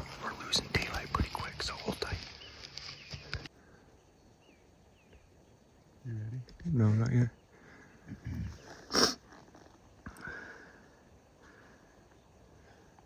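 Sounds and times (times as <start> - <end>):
hushed voices murmuring: 0.0 - 2.4.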